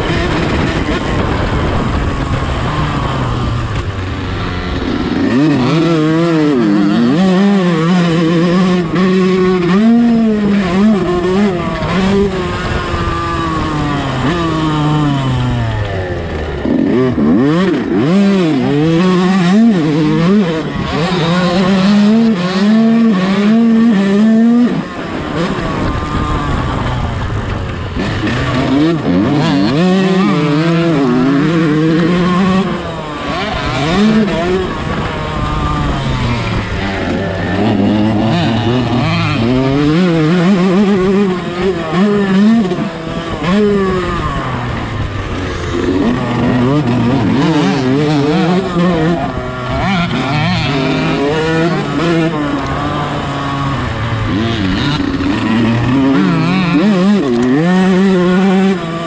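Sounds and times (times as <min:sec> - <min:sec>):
motorbike engine revving: 0:00.0 - 0:59.0.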